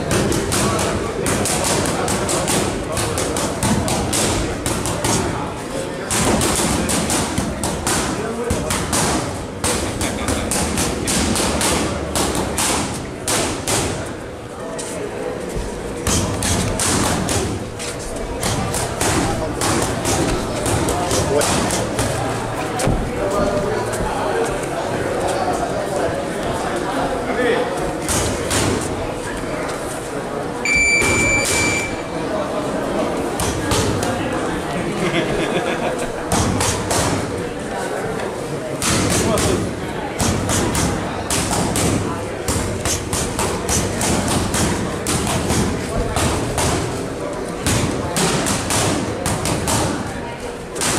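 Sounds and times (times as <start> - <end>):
boxing gloves hitting mitts: 0.1 - 5.4, 6.1 - 14.1, 16.0 - 23.0, 36.3 - 37.3, 38.8 - 47.0, 47.6 - 50.1.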